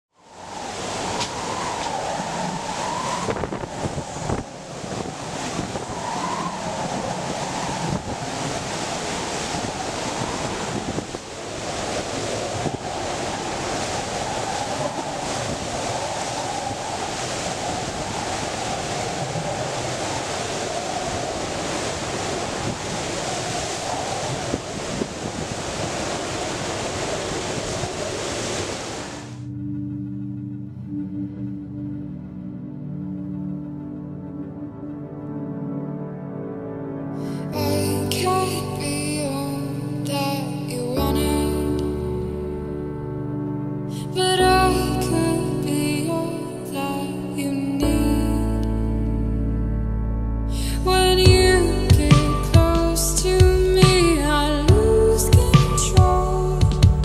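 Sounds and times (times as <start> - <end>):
driving rain: 0.1 - 29.5, 49.9 - 57.0
hurricane wind howling: 0.1 - 57.0
gusts buffeting microphone: 0.2 - 29.5.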